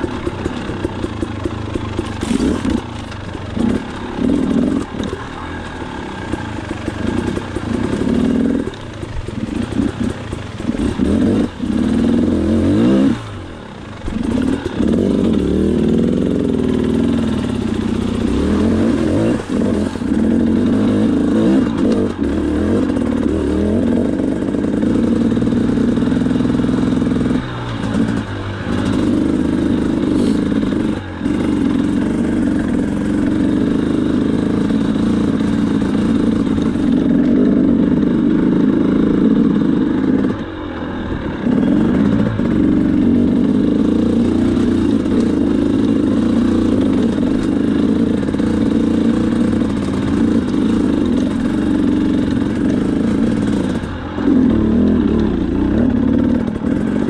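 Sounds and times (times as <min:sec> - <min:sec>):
dirt bike engine revving: 0:00.0 - 0:57.0.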